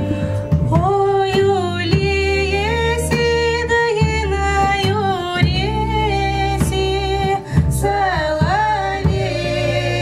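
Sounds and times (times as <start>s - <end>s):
acoustic bass guitar: 0.0s - 10.0s
women singing folk song: 0.5s - 10.0s.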